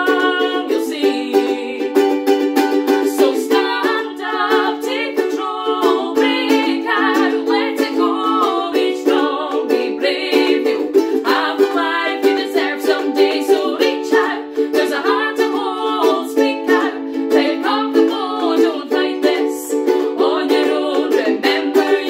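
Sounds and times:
ukuleles strummed: 0.0s - 22.0s
women singing: 0.0s - 22.0s.

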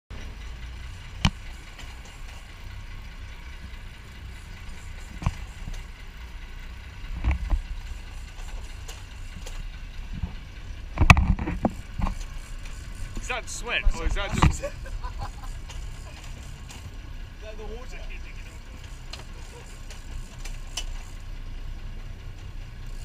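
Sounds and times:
boat engine rumble: 0.1s - 23.0s.

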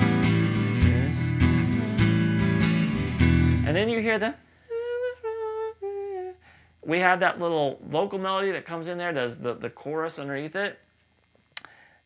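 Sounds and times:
man humming: 4.7s - 6.5s.

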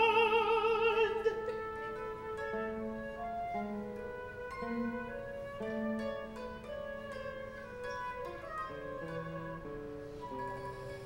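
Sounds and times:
held ensemble notes: 0.0s - 11.0s.

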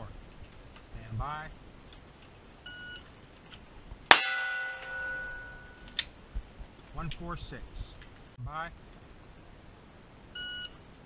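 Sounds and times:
steel target ringing: 4.1s - 6.0s.

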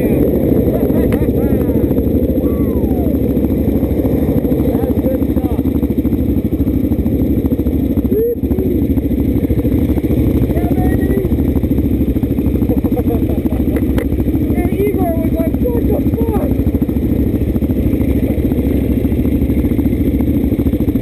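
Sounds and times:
motorcycle engines idling: 0.0s - 21.0s.

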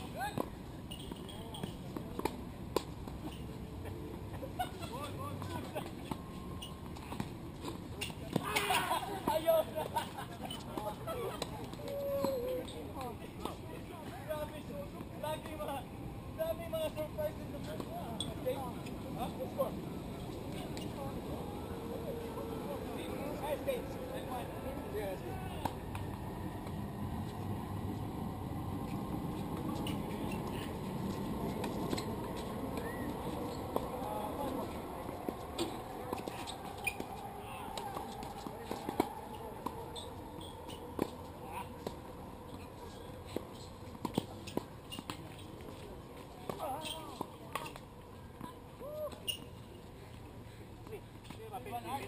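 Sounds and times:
distant voices: 0.0s - 51.4s
outdoor background noise: 0.0s - 52.0s
tennis balls struck by rackets: 43.3s - 45.8s.

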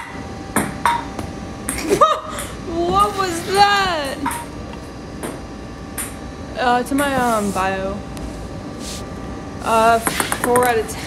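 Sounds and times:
young woman's voice: 2.6s - 4.3s, 6.6s - 8.0s, 9.6s - 11.0s.

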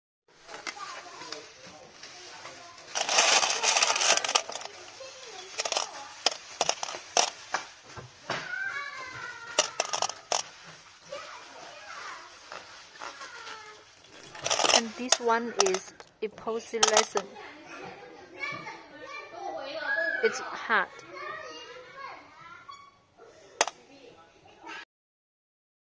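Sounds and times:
rustling burst: 2.9s - 4.8s, 5.5s - 7.4s
small resin pieces clicking: 3.0s - 4.7s, 9.6s - 10.4s, 14.4s - 14.9s.

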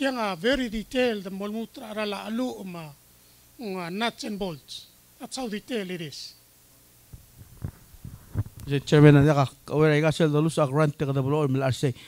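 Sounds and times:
man speaking: 0.0s - 3.0s, 3.6s - 6.4s, 8.7s - 12.0s
microphone handling thumps: 7.1s - 9.6s.

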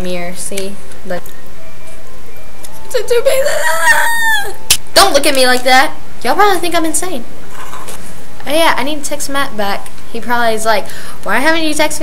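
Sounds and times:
girl making silly vocal noise: 3.2s - 4.6s.

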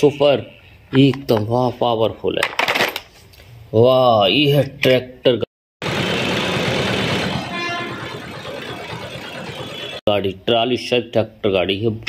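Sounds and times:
auto-rickshaws passing: 5.8s - 10.0s
road traffic engines: 5.8s - 10.0s
tractor passing: 5.8s - 10.0s
short horn toot: 7.5s - 8.0s.

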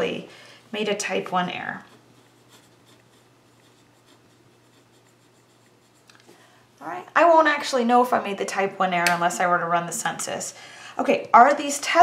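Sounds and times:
pen scratching on paper: 1.7s - 6.1s.

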